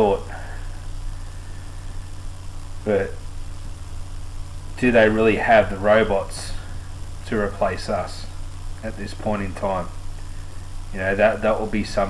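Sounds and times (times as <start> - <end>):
low hum with hiss: 0.0 - 12.0
person speaking: 10.9 - 12.0.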